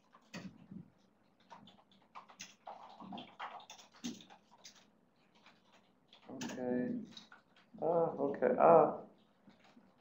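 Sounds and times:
keyboard and mouse clicks: 0:00.0 - 0:00.7, 0:01.4 - 0:07.7.

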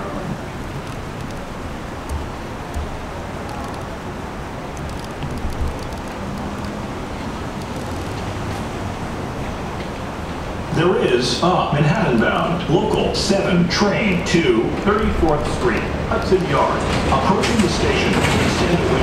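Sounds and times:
station ambience: 0:00.0 - 0:19.0
subway train rumble: 0:00.0 - 0:19.0.

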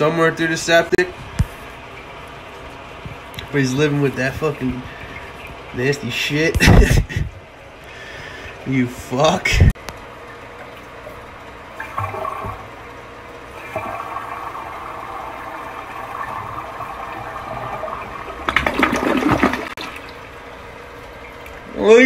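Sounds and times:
toilet flushing: 0:11.7 - 0:22.0.

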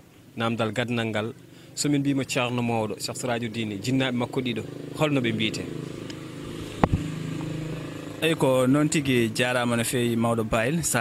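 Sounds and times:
engine running steadily: 0:01.3 - 0:10.2.

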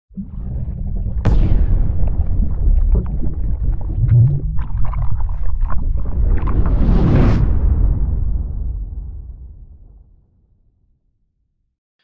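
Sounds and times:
crackling splash-like sounds: 0:00.1 - 0:08.2
deep steady rumble: 0:00.1 - 0:10.1.

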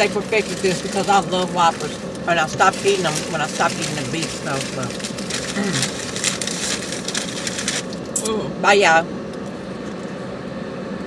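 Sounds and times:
car idling hum: 0:00.0 - 0:11.0
ventilation fan hiss: 0:00.0 - 0:11.0.

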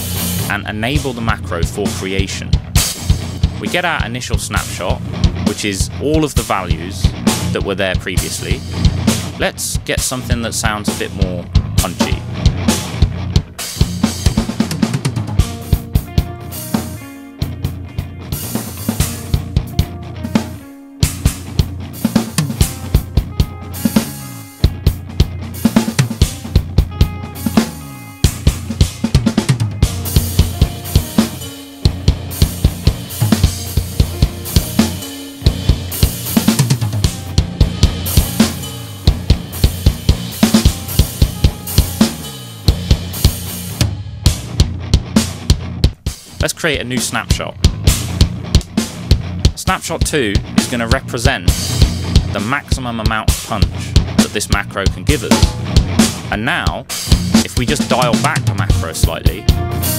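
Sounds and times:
backing track: 0:00.0 - 0:59.9
rock drum groove: 0:00.0 - 0:59.9.

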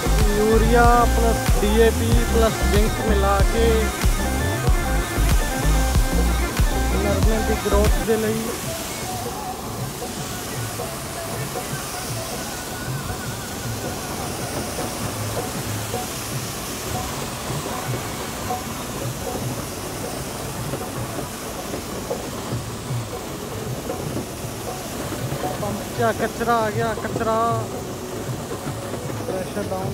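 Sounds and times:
spray nozzle hissing: 0:00.0 - 0:29.9.

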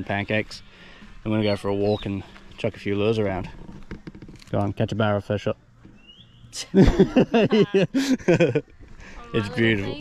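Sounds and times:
high rising chirp: 0:01.3 - 0:02.3.

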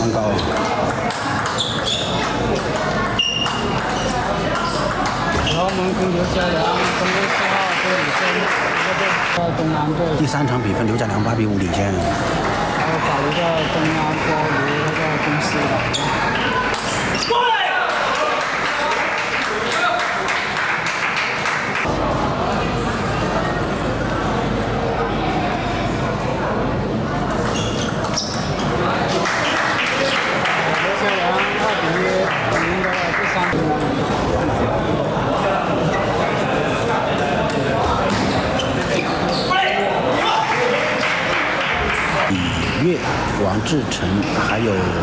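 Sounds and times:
spectators' voices in a hall: 0:00.0 - 0:45.0.

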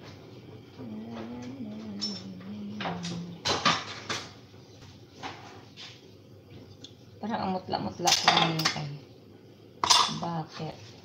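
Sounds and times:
utensils clinking against pots: 0:01.9 - 0:04.3, 0:08.0 - 0:08.9, 0:09.8 - 0:10.3.

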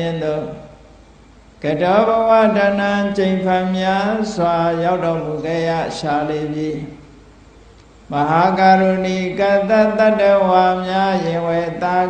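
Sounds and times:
person chanting: 0:00.0 - 0:00.8, 0:01.6 - 0:07.0, 0:08.1 - 0:12.0.

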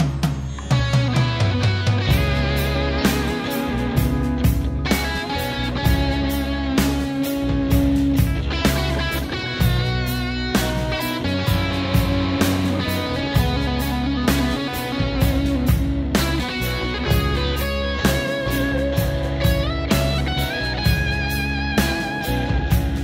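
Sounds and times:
bass: 0:00.0 - 0:23.0
drum kit beat: 0:00.0 - 0:23.0
electric guitar lead: 0:00.0 - 0:23.0.

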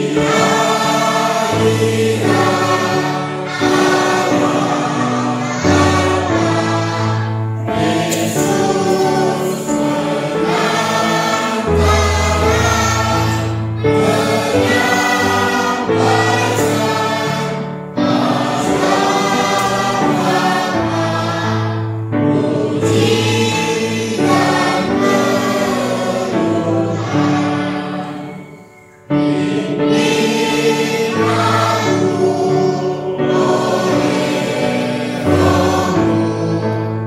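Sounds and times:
choir singing a hymn: 0:00.0 - 0:37.0
sustained instrumental accompaniment: 0:00.0 - 0:37.0.

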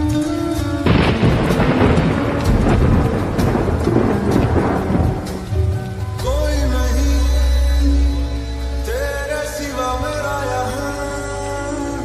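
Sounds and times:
rain: 0:00.0 - 0:12.0
slowed lofi music: 0:00.0 - 0:12.0
thunderclap: 0:00.8 - 0:06.5
person singing: 0:06.2 - 0:12.0.

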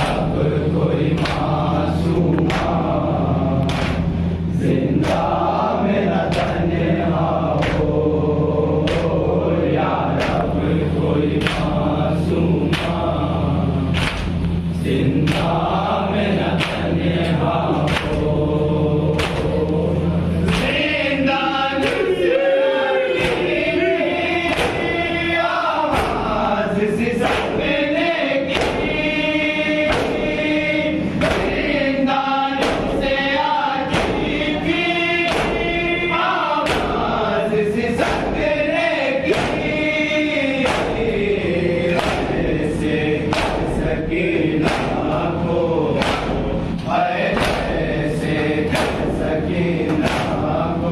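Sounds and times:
men chanting a lament: 0:00.0 - 0:50.9.

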